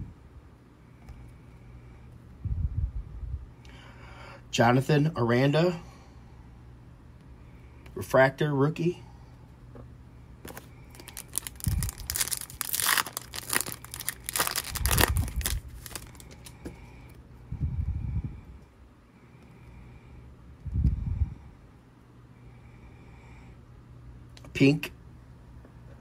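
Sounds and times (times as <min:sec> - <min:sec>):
wrapper crinkling and tearing: 0:10.5 - 0:16.5.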